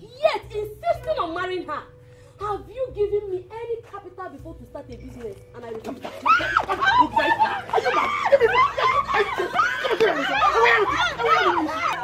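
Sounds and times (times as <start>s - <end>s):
people crying out: 6.2s - 12.0s.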